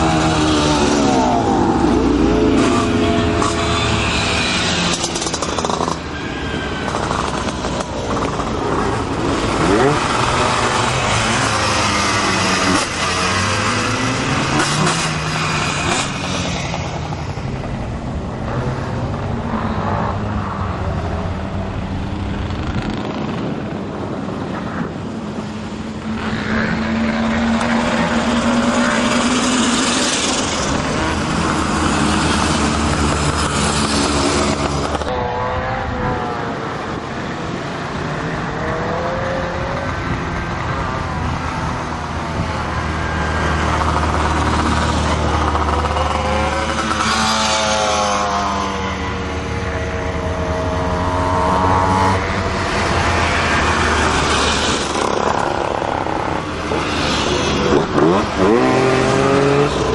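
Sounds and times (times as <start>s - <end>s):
small engines revving high: 0.0s - 16.6s, 42.3s - 59.9s.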